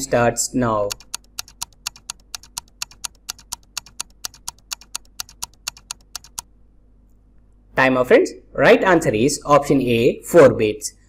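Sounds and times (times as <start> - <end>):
countdown timer ticking: 0.9 - 6.4.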